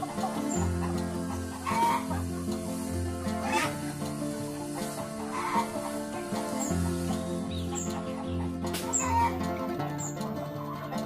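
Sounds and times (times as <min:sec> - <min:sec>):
background music with bass line: 0:00.0 - 0:11.0
chickens clucking: 0:00.0 - 0:11.0.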